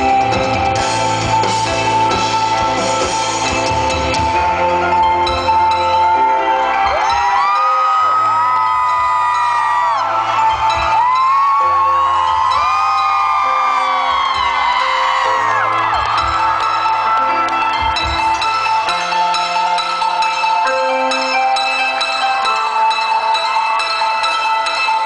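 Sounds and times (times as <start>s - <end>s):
chiming mallet notes: 0.0s - 25.0s
live band music: 0.0s - 25.0s.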